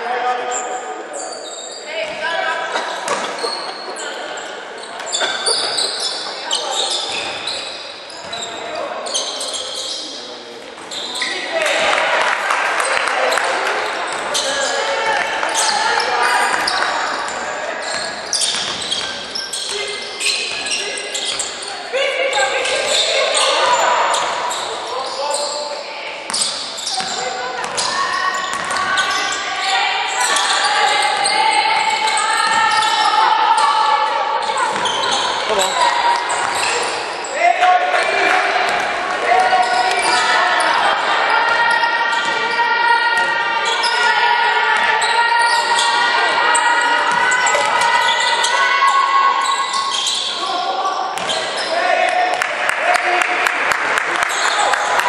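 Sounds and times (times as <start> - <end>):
people talking: 0.0 - 55.0.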